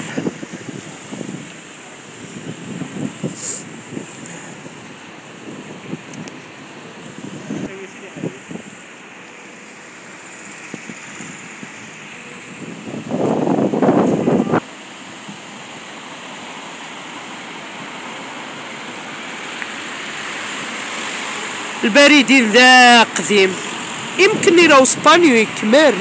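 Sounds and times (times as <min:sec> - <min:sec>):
wind on microphone: 0:00.0 - 0:08.8, 0:10.6 - 0:14.6
street traffic: 0:00.0 - 0:26.0.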